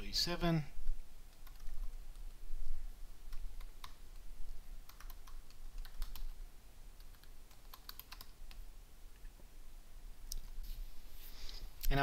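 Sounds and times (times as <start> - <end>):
faint low hum: 0.0 - 12.0
keys tapped on computer keyboard: 1.3 - 2.4, 3.3 - 6.4, 7.0 - 8.6.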